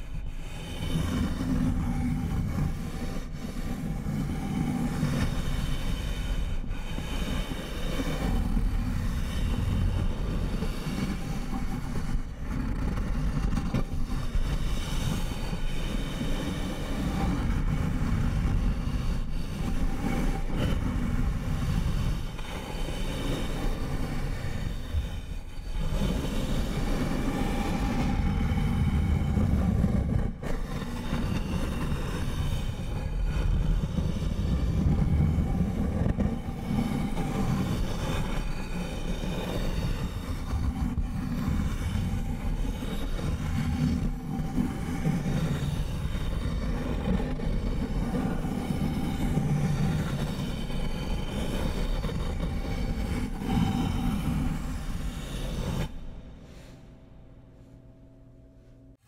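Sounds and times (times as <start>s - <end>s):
fingers scratching a surface: 7.1s - 56.0s.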